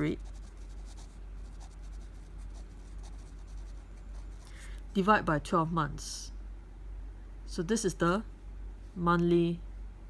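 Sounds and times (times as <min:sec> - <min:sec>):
pen scratching on paper: 0:00.0 - 0:04.7.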